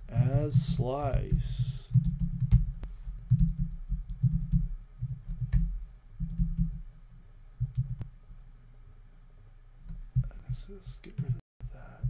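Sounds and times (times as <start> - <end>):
typing on computer keyboard: 1.9 - 6.8, 7.6 - 8.0.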